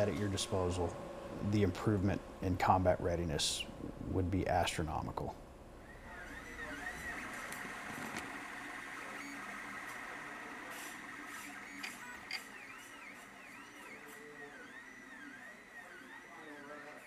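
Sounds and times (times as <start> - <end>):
stepper motors whining: 5.8 - 17.0.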